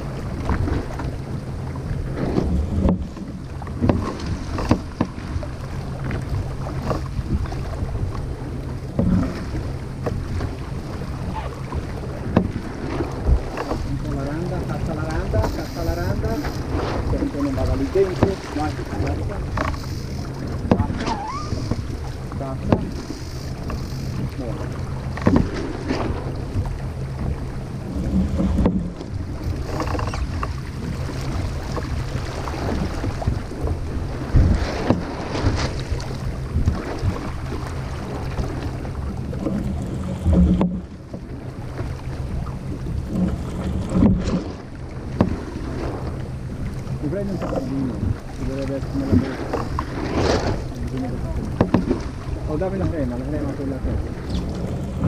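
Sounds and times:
water rushing past boat: 0.0 - 55.0
wind: 0.0 - 55.0
knocks from deck and rigging: 2.0 - 8.2, 8.9 - 10.6, 11.2 - 14.0, 16.2 - 24.4, 25.1 - 48.4, 49.0 - 53.0.

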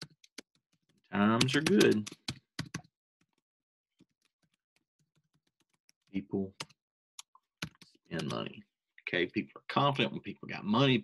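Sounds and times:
typing on computer keyboard: 0.0 - 3.4.

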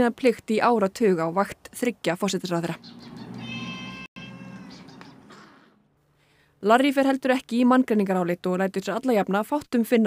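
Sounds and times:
cat meowing: 3.2 - 5.3.

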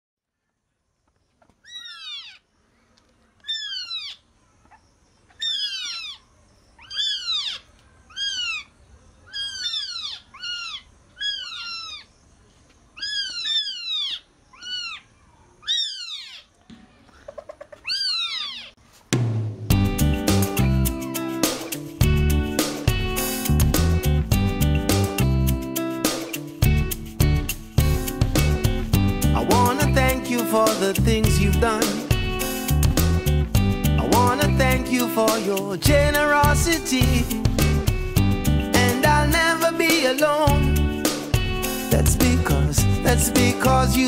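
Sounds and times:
loud music: 19.2 - 44.0.

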